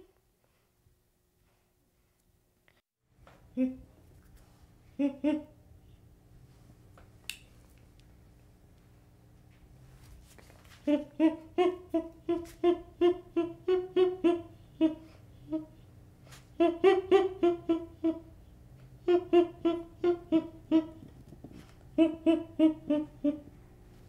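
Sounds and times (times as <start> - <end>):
baby chimpanzee calling: 16.6 - 18.3, 19.0 - 21.0, 22.0 - 23.4.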